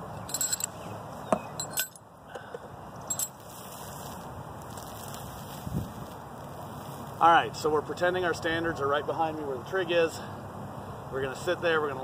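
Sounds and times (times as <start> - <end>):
faint outdoor background: 0.0 - 12.0
handling clicks and clinks: 0.1 - 3.6.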